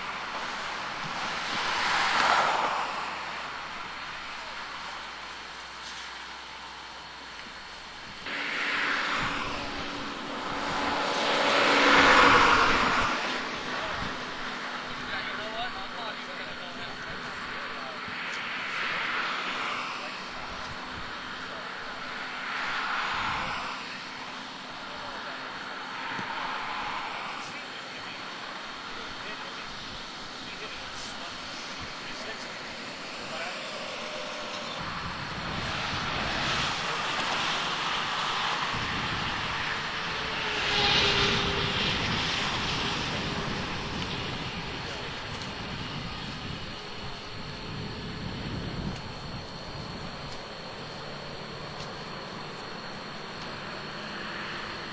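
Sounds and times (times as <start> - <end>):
heavy deep vehicle rumble: 0.0 - 54.9
road traffic passing: 0.0 - 54.9.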